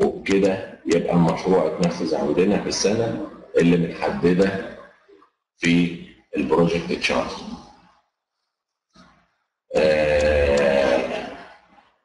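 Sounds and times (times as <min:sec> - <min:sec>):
man's wordless hesitation sound: 0:09.7 - 0:11.4.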